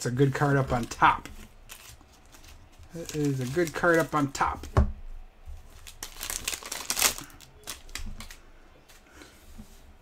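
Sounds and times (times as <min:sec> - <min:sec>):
foil wrapper crinkling: 0:00.4 - 0:04.6, 0:05.6 - 0:08.4.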